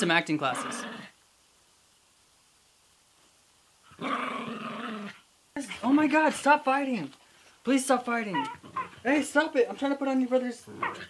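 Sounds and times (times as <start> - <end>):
small dog growling: 0.4 - 1.2, 3.9 - 5.2, 8.3 - 9.1, 10.6 - 11.0
dogs scuffling: 5.8 - 11.0.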